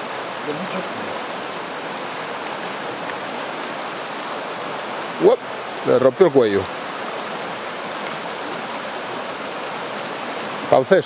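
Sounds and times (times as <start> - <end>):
river water rushing over stones: 0.0 - 11.0.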